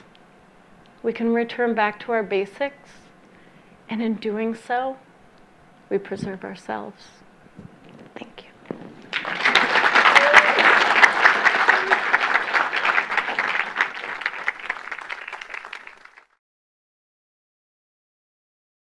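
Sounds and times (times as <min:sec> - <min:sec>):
audience applauding: 0:09.0 - 0:16.4.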